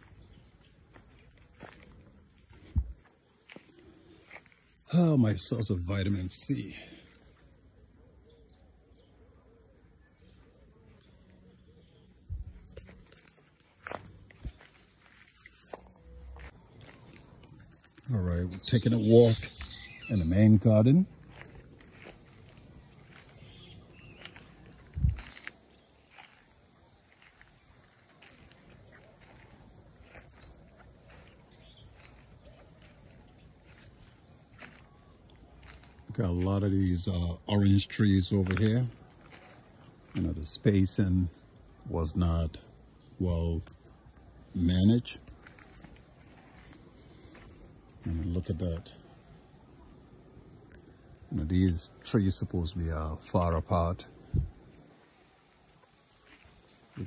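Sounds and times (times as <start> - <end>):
footsteps on dry ground: 0.0 - 5.0, 12.3 - 40.7, 45.2 - 48.8, 54.2 - 57.0
insects trilling: 0.0 - 57.0.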